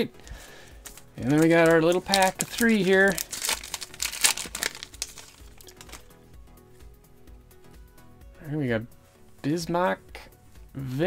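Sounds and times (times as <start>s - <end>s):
faint background music: 0.0s - 11.0s
foil wrapper crinkling and tearing: 0.8s - 6.1s.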